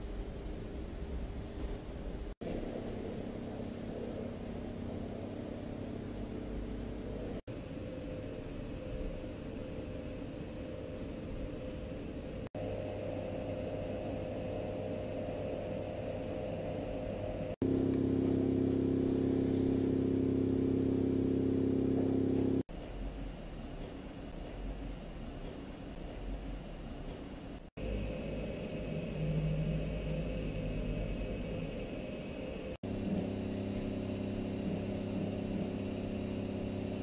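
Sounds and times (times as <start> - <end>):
low hum with held tones: 0.0 - 37.0.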